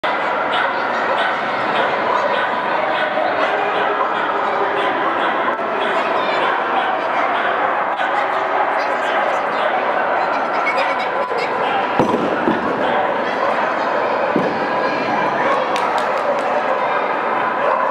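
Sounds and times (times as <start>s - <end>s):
crowd chatter in a hall: 0.0s - 17.9s
dogs barking: 0.0s - 17.9s.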